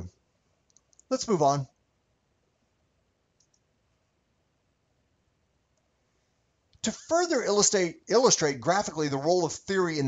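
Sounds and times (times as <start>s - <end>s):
faint quick clicks: 0.6s - 1.2s, 3.4s - 3.7s.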